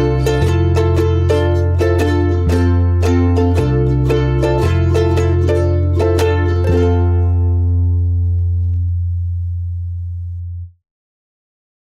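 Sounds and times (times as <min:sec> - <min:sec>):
deep bass note ringing: 0:04.1 - 0:10.8.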